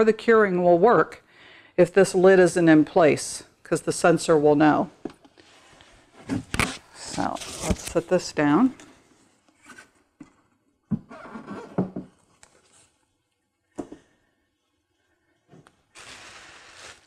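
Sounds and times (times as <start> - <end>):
packing rustling scrape: 16.0 - 17.0.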